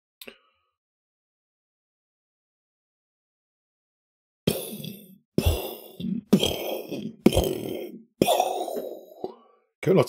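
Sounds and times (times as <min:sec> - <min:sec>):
person coughing: 0:04.5 - 0:09.3.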